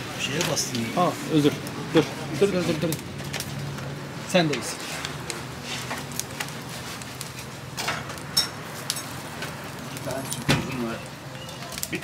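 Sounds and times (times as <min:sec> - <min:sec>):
charcoal fire crackling: 0:00.0 - 0:12.0.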